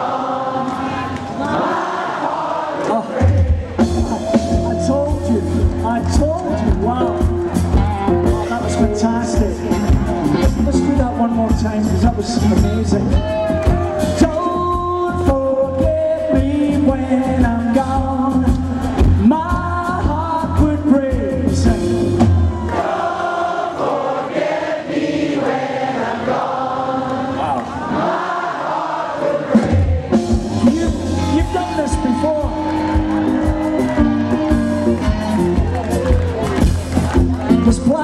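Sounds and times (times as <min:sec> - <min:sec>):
crowd singing together: 0:00.0 - 0:04.4, 0:22.4 - 0:30.6
lead singer singing: 0:00.0 - 0:06.9, 0:10.6 - 0:36.2
live rock band playing: 0:03.2 - 0:22.7, 0:29.5 - 0:38.0.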